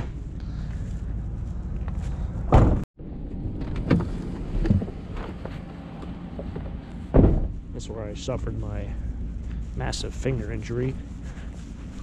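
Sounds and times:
steady low rumble: 0:00.0 - 0:12.0
loud thump: 0:02.5 - 0:02.8, 0:07.1 - 0:07.6.

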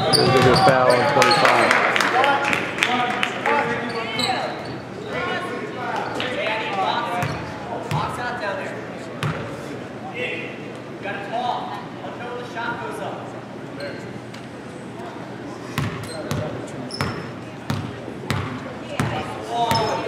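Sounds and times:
voices echoing in gym: 0:00.0 - 0:20.0.

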